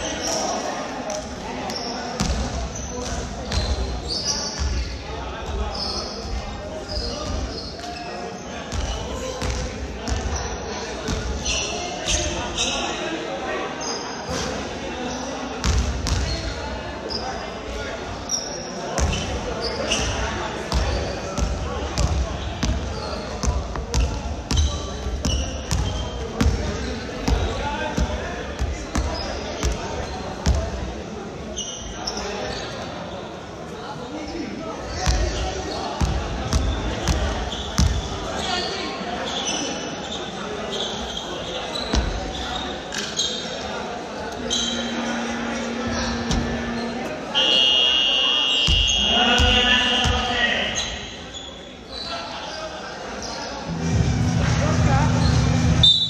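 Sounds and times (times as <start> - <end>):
players chatting: 0.0 - 56.0.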